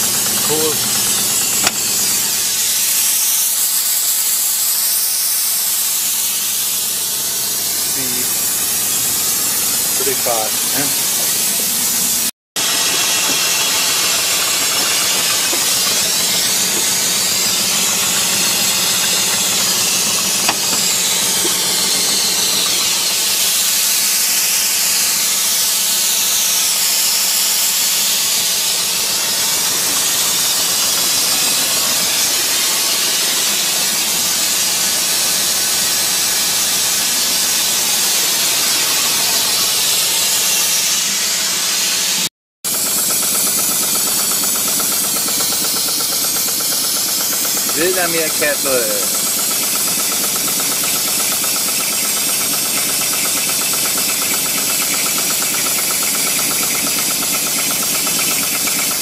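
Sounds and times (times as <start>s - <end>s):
steam hissing: 0.0s - 59.0s.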